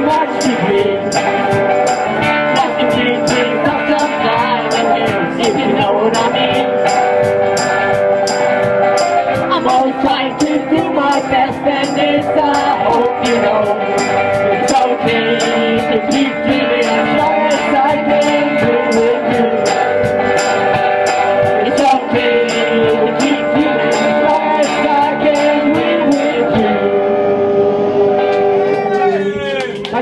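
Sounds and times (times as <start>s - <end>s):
blues band playing: 0.0s - 30.0s
guitar: 0.0s - 30.0s.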